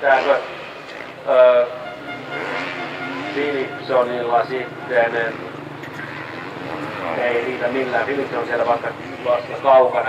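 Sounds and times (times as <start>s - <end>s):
dirt bike engines idling: 0.0s - 10.0s
man's voice: 3.4s - 5.4s.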